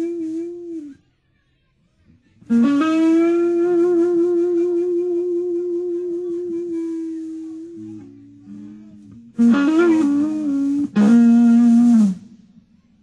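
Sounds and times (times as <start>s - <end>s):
electric guitar bent note: 5.1s - 12.4s.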